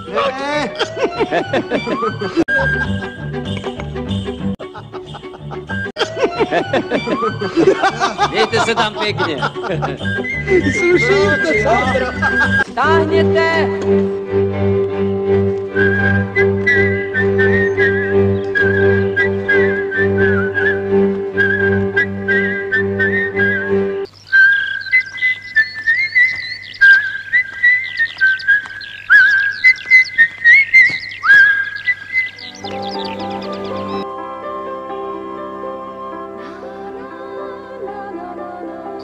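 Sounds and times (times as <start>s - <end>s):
high chirps: 0.0s - 12.7s, 21.5s - 34.1s
person whistling a tune: 2.0s - 3.7s, 9.9s - 12.7s, 15.8s - 20.8s, 21.4s - 23.8s.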